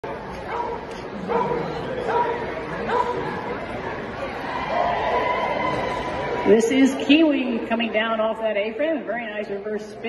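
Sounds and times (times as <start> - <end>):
crowd chatter in large hall: 0.0 - 10.0
dog barking: 0.5 - 3.2.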